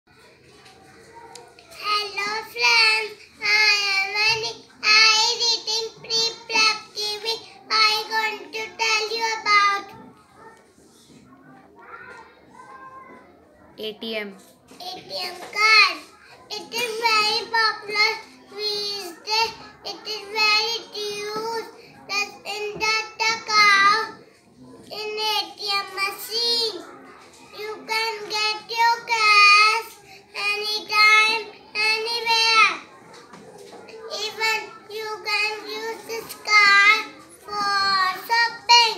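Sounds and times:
speech: 0.1s - 38.9s.

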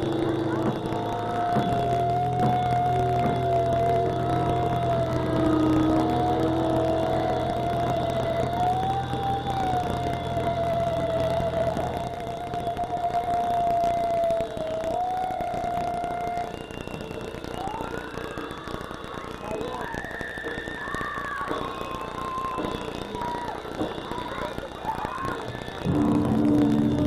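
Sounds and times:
low drone: 0.0s - 16.9s, 25.8s - 27.0s
electric guitar feedback tone: 0.0s - 17.8s, 25.8s - 27.0s.

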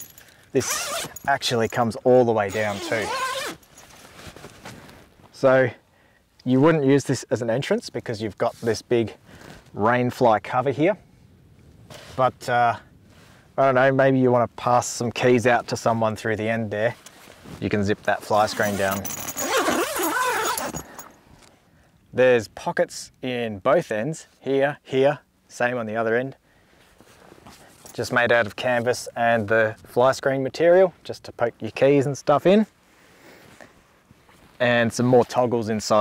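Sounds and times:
zipper pulled: 0.0s - 1.3s, 2.5s - 4.7s, 18.4s - 21.1s
faint rustling: 2.5s - 5.5s, 26.7s - 29.8s.

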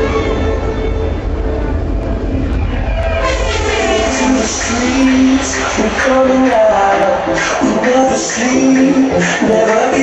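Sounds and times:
crowd voices: 0.0s - 10.0s
dance club music bass: 2.3s - 10.0s.

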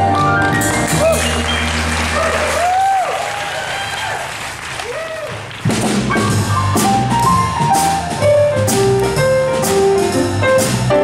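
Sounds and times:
upright bass: 0.0s - 2.8s, 5.6s - 11.0s
piano: 0.0s - 4.2s, 4.9s - 11.0s
audience applauding and cheering: 0.2s - 7.5s
jazz singing: 5.6s - 11.0s.

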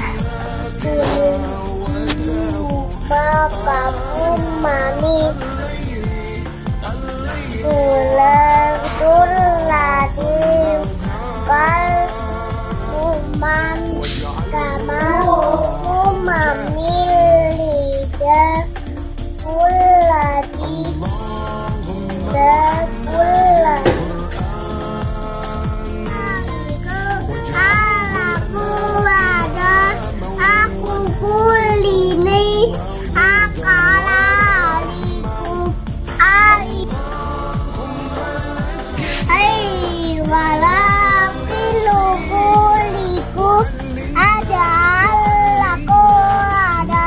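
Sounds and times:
background music: 0.0s - 47.0s
child chanting recitation: 0.0s - 47.0s.

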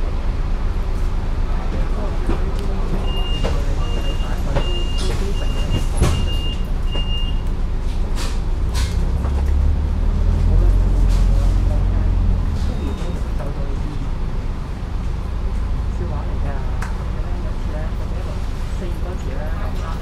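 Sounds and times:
bus diesel engine rumbling: 0.0s - 20.0s.

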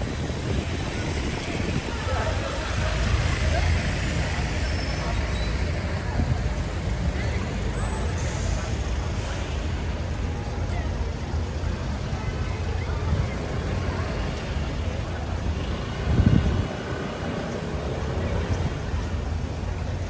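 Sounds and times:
low rumble of traffic: 0.0s - 20.0s
passers-by talking: 0.0s - 20.0s.

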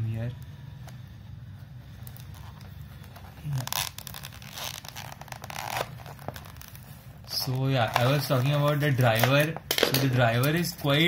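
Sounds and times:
plastic crinkling and ripping: 2.0s - 11.0s.

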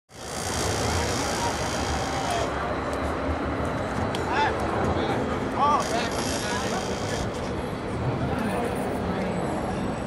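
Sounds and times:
faint distant voices: 0.3s - 10.0s.

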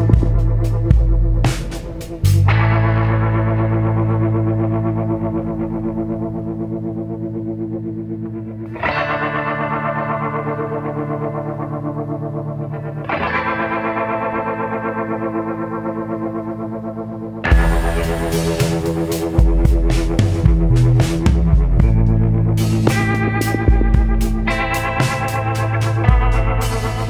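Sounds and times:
ambient meditation music chords: 0.0s - 27.0s.

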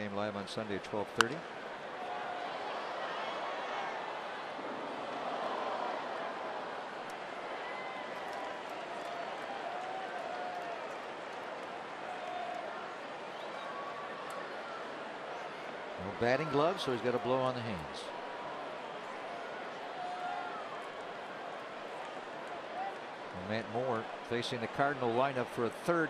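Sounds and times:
crowd murmur: 1.2s - 26.0s.

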